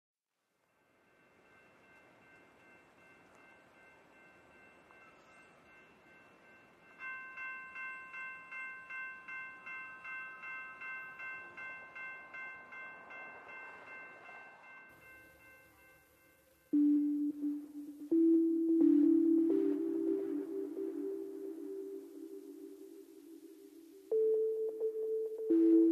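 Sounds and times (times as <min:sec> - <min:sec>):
pulsing chime-like sequence: 0:04.2 - 0:25.9.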